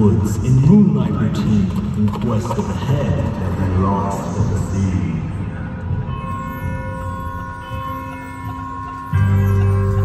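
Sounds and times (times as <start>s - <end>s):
low rumble of large hall: 0.0s - 10.0s.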